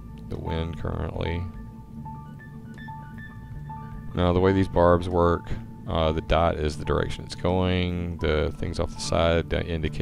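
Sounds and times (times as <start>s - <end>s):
slow sustained keyboard music: 0.0s - 10.0s.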